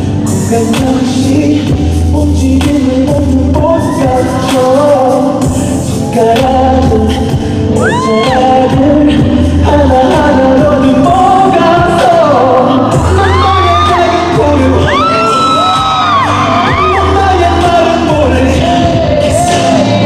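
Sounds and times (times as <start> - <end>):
male voice singing: 0.0 - 20.0
pop music backing track: 0.0 - 20.0.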